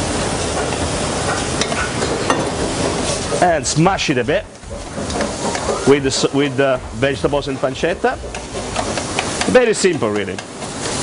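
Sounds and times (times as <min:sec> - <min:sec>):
meat sizzling in a pan: 0:00.0 - 0:11.0.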